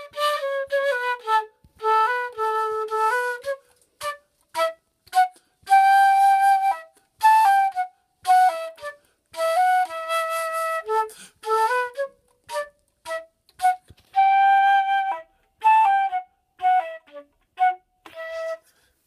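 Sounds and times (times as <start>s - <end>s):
flute playing short notes: 0.0s - 18.9s.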